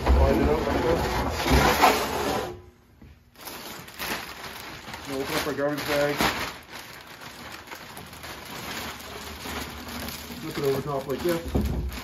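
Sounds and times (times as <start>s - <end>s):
plastic garbage bag crinkling: 3.3s - 12.0s.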